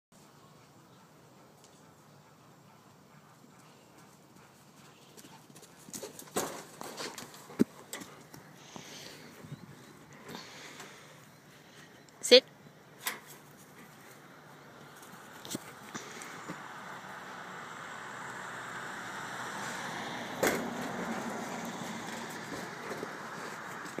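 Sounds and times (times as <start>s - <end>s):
rustling noise: 5.9s - 8.3s
sharp knocks and thumps: 20.4s - 21.4s.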